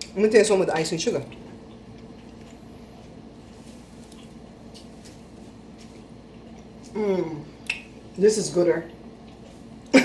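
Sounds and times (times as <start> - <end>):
person chewing: 1.2 - 7.9, 8.9 - 10.0.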